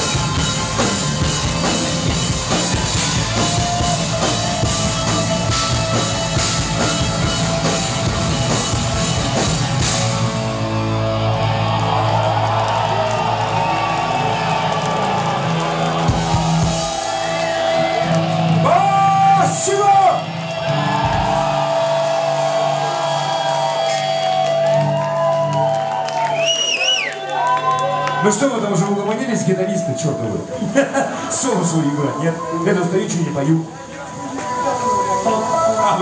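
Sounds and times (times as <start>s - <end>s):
electric guitars ringing: 0.0s - 12.6s, 15.4s - 26.0s
voices shouting and whooping: 11.3s - 28.5s.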